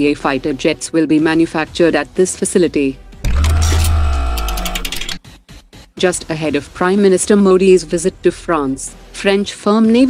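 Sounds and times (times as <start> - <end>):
rapid stuttering clicks: 3.3 - 5.2
short glitchy ticks: 3.3 - 5.2.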